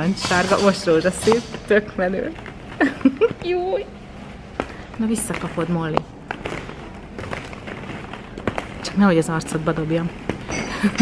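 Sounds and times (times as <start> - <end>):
plastic balls knocking and rustling: 0.0 - 11.0.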